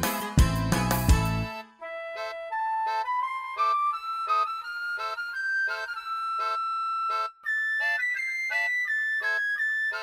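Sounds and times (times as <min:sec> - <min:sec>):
polka tune: 0:00.0 - 0:10.0.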